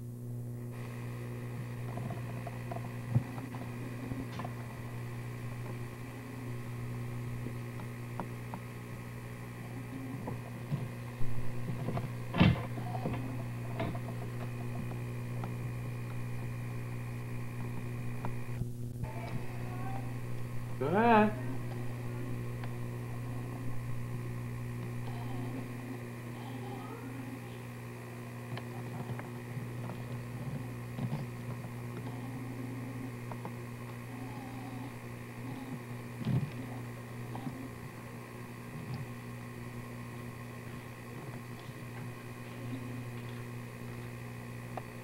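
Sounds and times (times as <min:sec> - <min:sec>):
low electrical hum: 0:00.0 - 0:45.0.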